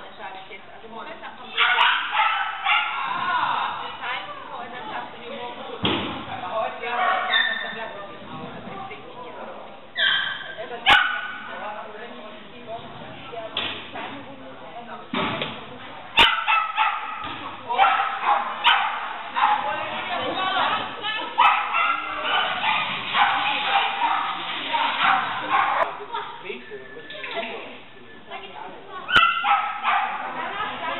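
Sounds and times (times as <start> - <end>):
dog barking and yipping: 1.6 - 3.1, 16.2 - 17.2, 17.8 - 19.8, 21.4 - 25.9, 29.1 - 30.4.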